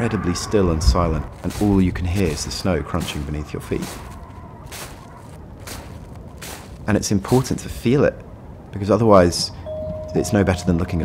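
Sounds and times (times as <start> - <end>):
low background noise: 0.0 - 11.0
footsteps crunching in snow: 0.4 - 7.6.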